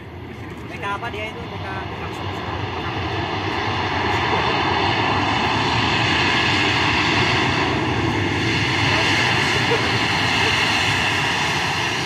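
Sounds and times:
faint engine whine: 0:00.0 - 0:12.0
jet engines roaring: 0:00.0 - 0:12.0.

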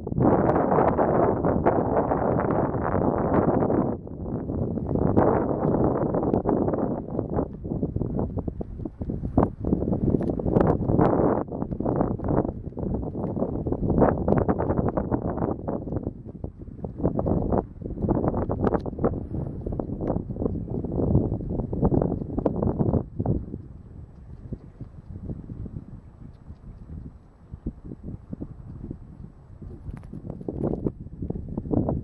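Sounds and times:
wind buffeting microphone: 0:00.0 - 0:32.0
camels walking on sand: 0:04.6 - 0:32.0.

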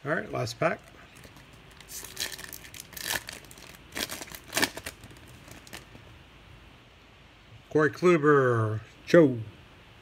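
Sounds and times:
wrapper tearing and crinkling: 0:01.2 - 0:06.0.

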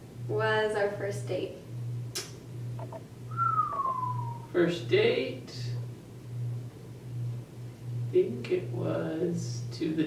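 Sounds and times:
steady low hum: 0:00.0 - 0:10.0
man whistling gliding note: 0:03.3 - 0:04.5.

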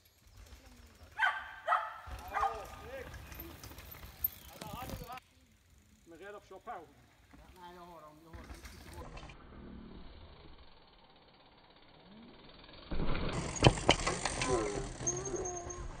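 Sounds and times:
tyres rolling on dirt: 0:00.0 - 0:05.2, 0:07.2 - 0:09.2, 0:13.3 - 0:16.0.

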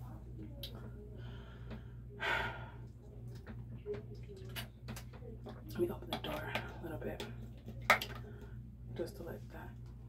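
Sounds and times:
woman breathing loudly: 0:01.2 - 0:02.9.

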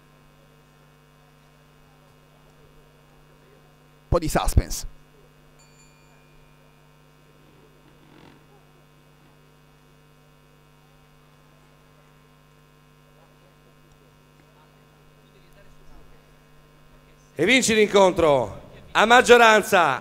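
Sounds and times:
faint electrical hum: 0:00.0 - 0:20.0.

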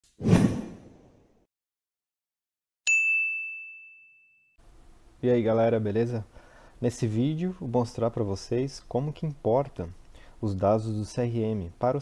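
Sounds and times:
bright ding: 0:02.9 - 0:04.6.

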